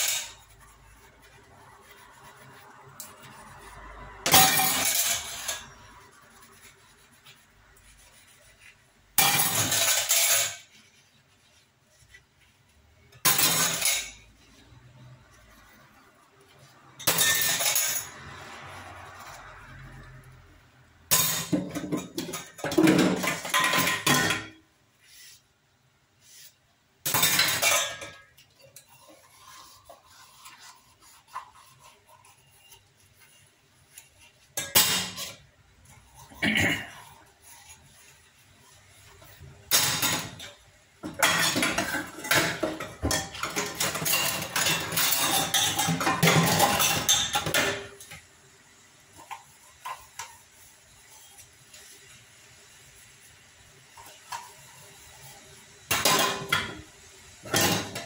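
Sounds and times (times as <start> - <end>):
steel utensils clattering in sink: 0.0 - 1.1, 3.0 - 6.6, 9.2 - 11.0, 13.2 - 14.3, 17.0 - 18.7, 21.1 - 24.6, 27.1 - 33.4, 34.2 - 38.2, 39.3 - 48.2, 55.9 - 58.0.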